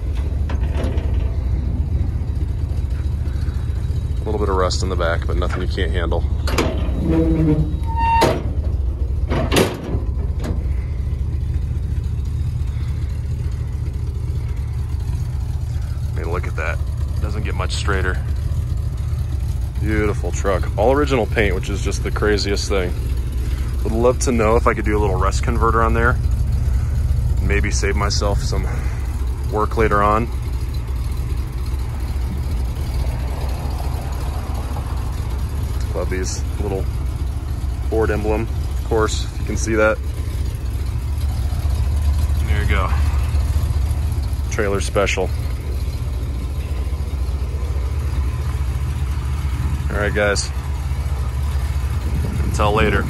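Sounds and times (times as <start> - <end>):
truck engine idling: 0.0 - 53.0.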